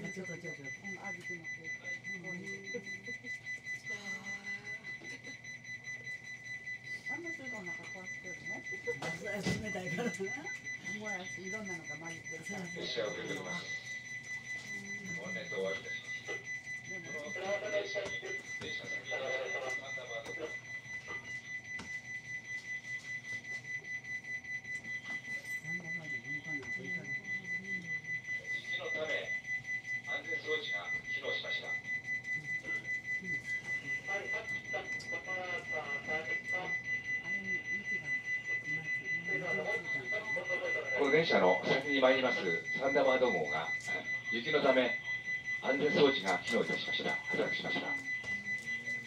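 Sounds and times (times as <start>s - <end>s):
high-pitched electronic alarm beeping: 0.0s - 49.0s.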